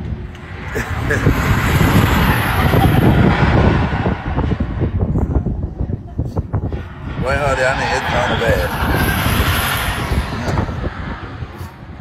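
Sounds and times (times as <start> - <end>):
roller coaster rumbling on track: 0.0 - 12.0
wind buffeting microphone: 0.0 - 12.0.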